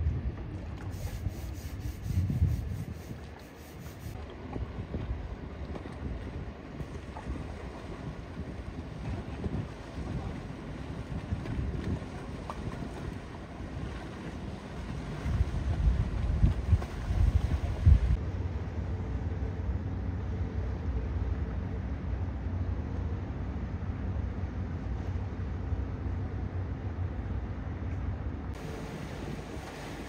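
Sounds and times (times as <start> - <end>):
wind buffeting microphone: 0.0 - 3.4, 4.0 - 18.2
boat motor rumble: 0.0 - 30.0
boat wake wash: 0.0 - 30.0.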